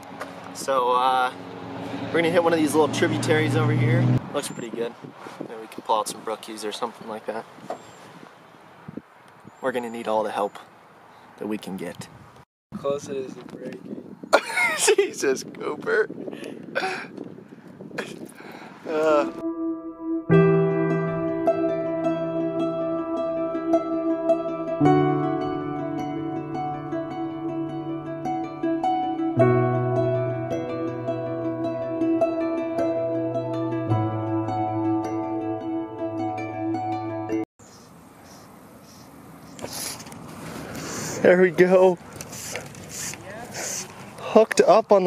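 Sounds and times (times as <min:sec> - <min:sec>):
wind noise on microphone: 0:03.8 - 0:06.5, 0:07.5 - 0:09.6, 0:11.9 - 0:19.4
man's laugh-like vocal burst: 0:14.3 - 0:15.1, 0:16.7 - 0:17.2, 0:18.0 - 0:18.3.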